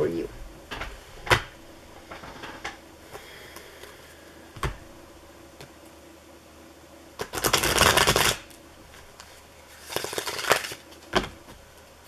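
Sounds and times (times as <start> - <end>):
cards being riffle-shuffled: 7.2 - 11.1.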